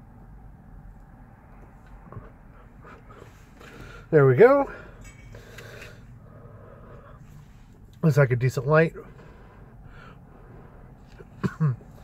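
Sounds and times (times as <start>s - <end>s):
low steady car cabin hum: 0.0s - 12.0s.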